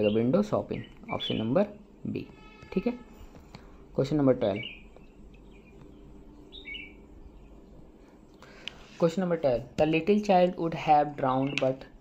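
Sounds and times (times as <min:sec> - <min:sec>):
low steady hum: 0:00.0 - 0:12.0
faint bird chirps: 0:04.5 - 0:08.6.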